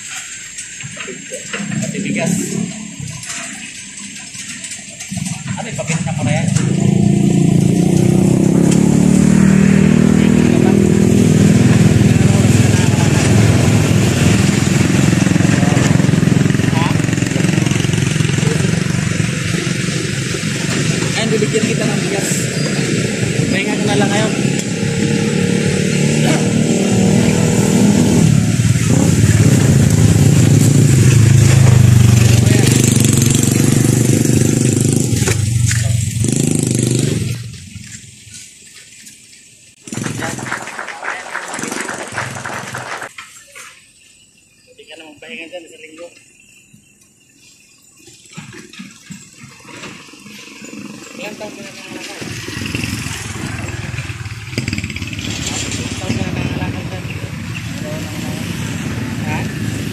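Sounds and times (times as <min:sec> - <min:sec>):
men talking: 0:00.9 - 0:02.7, 0:05.4 - 0:06.9, 0:10.0 - 0:14.1, 0:15.3 - 0:20.1, 0:20.8 - 0:24.8, 0:44.7 - 0:46.2, 0:51.2 - 0:52.4, 0:55.7 - 0:59.6
scooter engine idling: 0:10.6 - 0:22.9.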